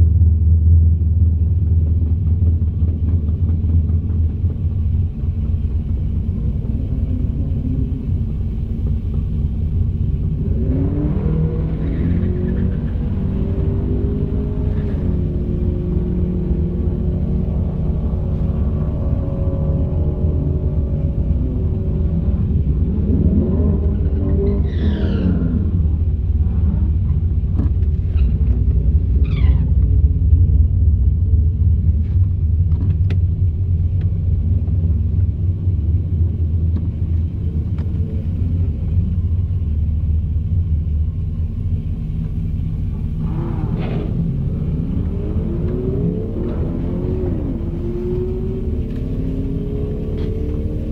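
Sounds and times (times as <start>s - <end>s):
car engine idling: 0.0s - 50.9s
car engine revving: 1.0s - 30.4s, 42.2s - 50.9s.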